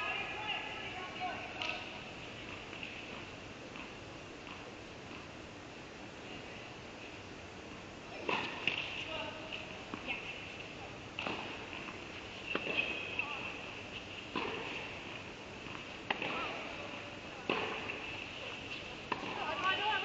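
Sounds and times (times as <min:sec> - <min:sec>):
steady high hum: 0:00.0 - 0:20.0
tennis balls struck and bouncing: 0:01.5 - 0:05.3, 0:08.2 - 0:20.0
players' calls and voices: 0:08.0 - 0:20.0.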